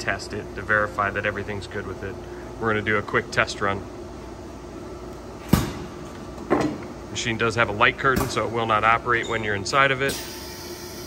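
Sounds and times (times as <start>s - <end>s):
low shop hum: 0.0s - 11.0s.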